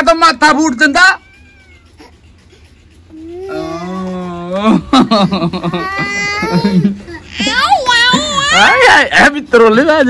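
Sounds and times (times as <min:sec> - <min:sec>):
boy wailing cry: 0:05.6 - 0:08.9.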